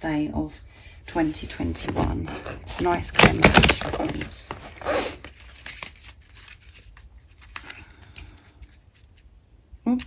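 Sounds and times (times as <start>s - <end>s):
playing cards shuffling: 1.2s - 9.4s.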